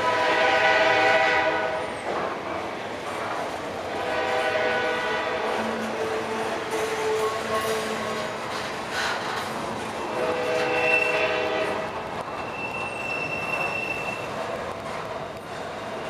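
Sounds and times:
train wheels rumbling on rails: 0.0s - 16.0s
high wheel squeal: 12.4s - 14.4s.

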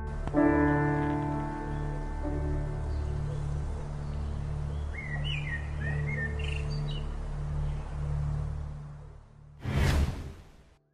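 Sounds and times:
low music drone: 0.0s - 9.6s.

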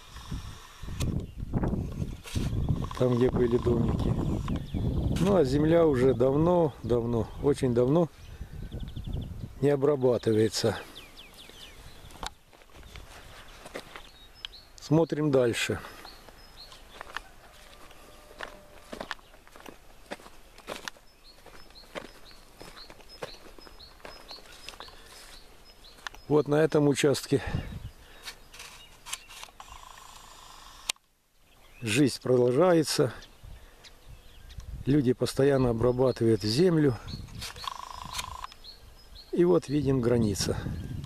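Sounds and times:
bird chirping: 0.0s - 41.0s
buzzing animal trill: 2.4s - 4.6s, 17.6s - 19.1s, 29.6s - 30.9s, 37.6s - 38.6s
footsteps through grass and soil: 10.3s - 29.4s.

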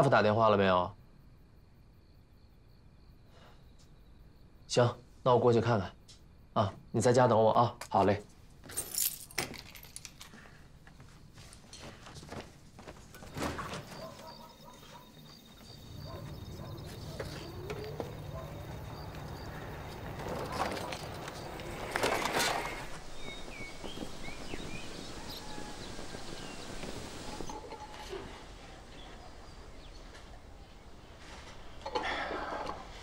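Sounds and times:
metal keys jingling: 8.6s - 10.4s
bird chirps: 13.8s - 27.6s.

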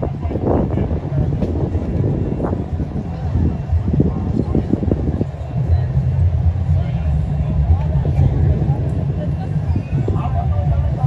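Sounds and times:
heavy low rumble: 0.0s - 11.0s.

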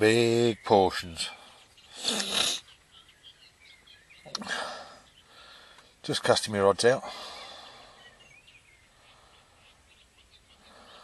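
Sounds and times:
faint bird chirps and whistles: 0.0s - 5.8s, 7.3s - 11.0s.

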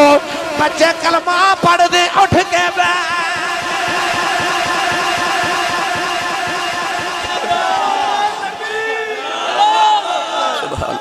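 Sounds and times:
man singing over loudspeaker: 0.0s - 9.2s
crowd noise rumble: 0.0s - 11.0s.

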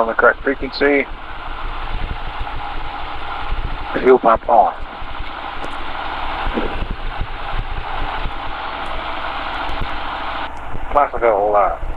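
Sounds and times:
propeller engine idling: 0.0s - 11.9s.

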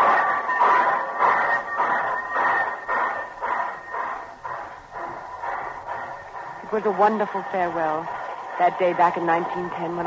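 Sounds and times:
steam locomotive chuffing: 0.0s - 10.0s.

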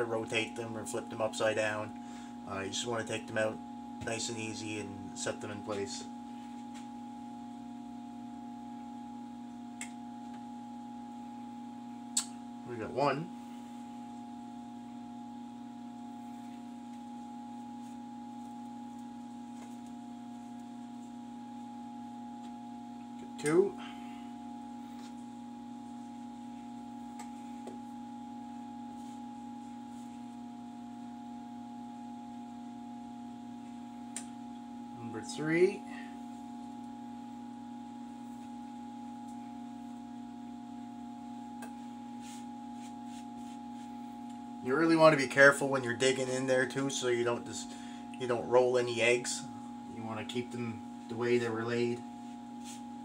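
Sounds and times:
low electrical hum: 0.0s - 53.0s.

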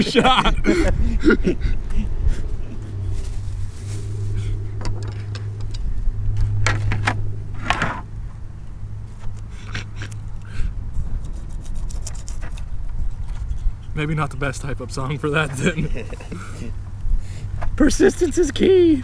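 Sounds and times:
low engine hum: 0.0s - 19.0s.

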